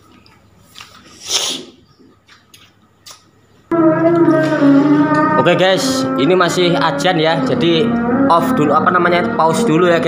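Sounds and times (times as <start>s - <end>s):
loud sung call to prayer: 3.7s - 10.0s.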